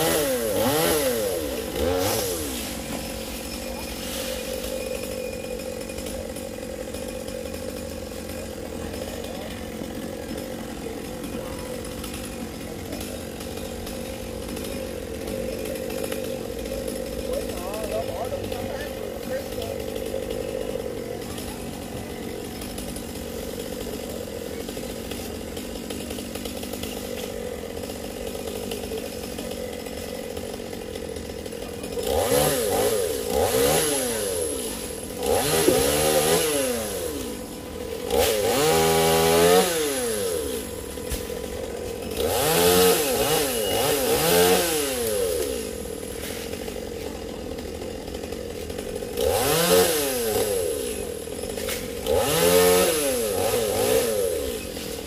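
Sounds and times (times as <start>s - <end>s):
chainsaw idling and revving: 0.0s - 55.0s.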